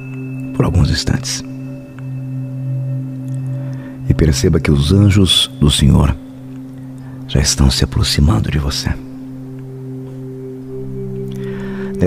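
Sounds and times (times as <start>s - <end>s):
soft ambient drone music: 0.0s - 12.0s.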